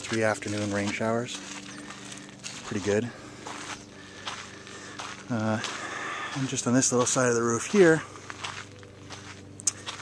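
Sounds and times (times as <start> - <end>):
footsteps on dry dirt: 0.0 - 10.0.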